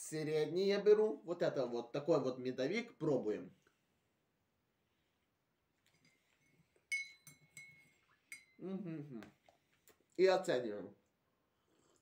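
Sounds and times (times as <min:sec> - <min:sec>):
spoon clinking against mug: 0:06.9 - 0:08.6.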